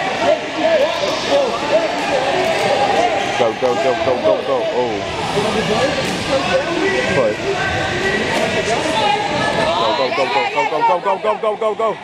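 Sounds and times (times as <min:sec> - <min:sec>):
crowd chatter: 0:00.0 - 0:12.0
people shouting and calling out: 0:00.0 - 0:12.0.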